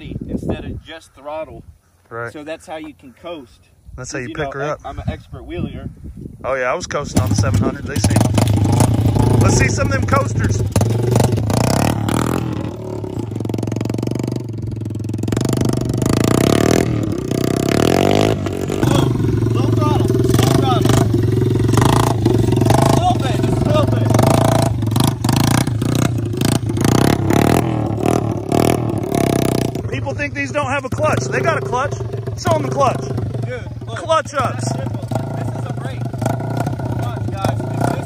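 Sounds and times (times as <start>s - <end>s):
dirt bike engine revving: 6.9s - 38.0s.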